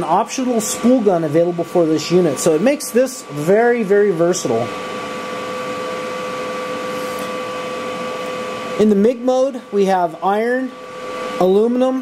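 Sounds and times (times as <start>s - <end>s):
welder cooling fan whirring: 0.0s - 12.0s.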